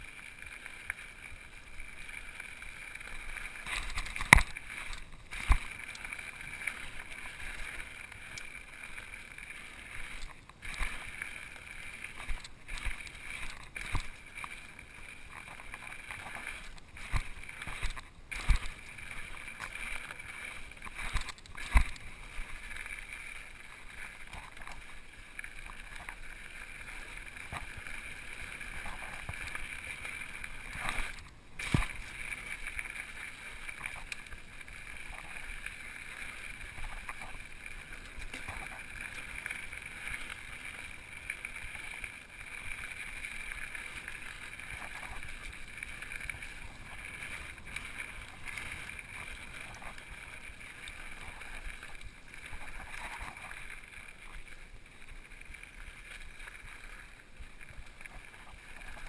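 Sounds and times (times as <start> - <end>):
bike tyres rushing and rattling: 0.0 - 59.0.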